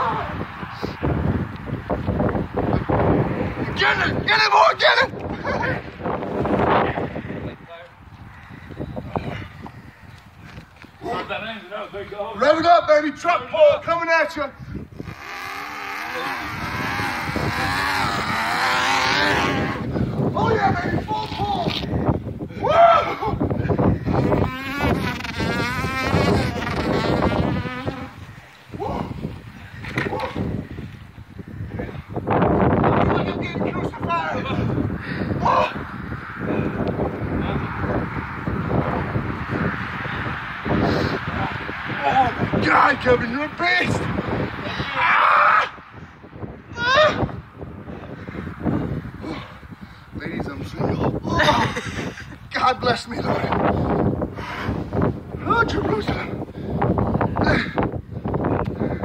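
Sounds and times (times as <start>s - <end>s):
person yelling: 0.0s - 0.4s, 16.1s - 21.8s, 22.5s - 23.4s, 28.7s - 29.2s, 35.4s - 35.8s, 44.7s - 45.8s, 46.7s - 47.4s
men shouting and whooping: 0.0s - 0.7s, 3.5s - 7.7s, 15.9s - 24.4s, 28.1s - 30.9s, 31.7s - 38.1s, 40.2s - 45.9s, 46.6s - 47.5s, 50.8s - 54.0s, 55.4s - 56.5s
high rising whoop: 22.5s - 23.4s, 44.6s - 45.8s.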